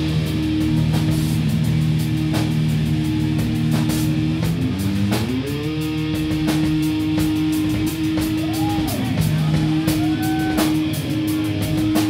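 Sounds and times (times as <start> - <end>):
drum kit and cymbals: 0.0 - 12.0
electric guitar sustained notes: 0.0 - 12.0.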